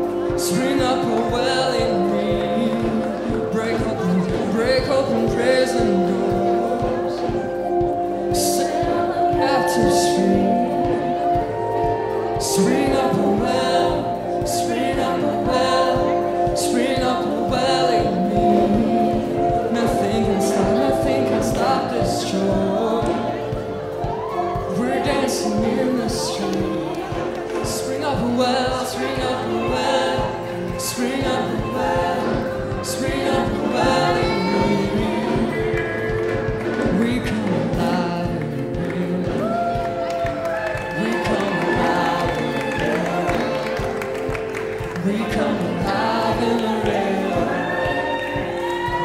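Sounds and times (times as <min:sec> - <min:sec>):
group singing a gospel song: 0:00.0 - 0:49.0
held chords: 0:00.0 - 0:49.0
steady drum beat: 0:00.0 - 0:49.0.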